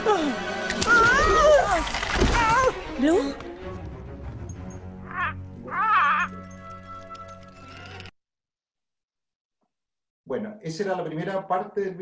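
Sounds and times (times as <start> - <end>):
film score music: 0.0 - 8.1
cartoon character vocal cries: 5.1 - 6.4.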